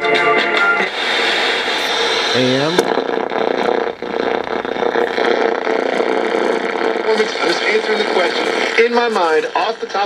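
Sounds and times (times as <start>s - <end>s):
radio static between stations: 0.0s - 10.0s.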